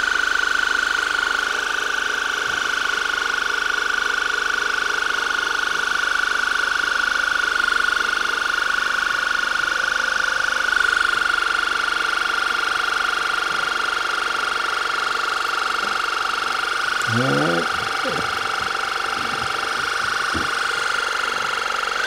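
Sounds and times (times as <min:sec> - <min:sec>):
pulsing high-pitched pump hum: 0:00.0 - 0:22.0.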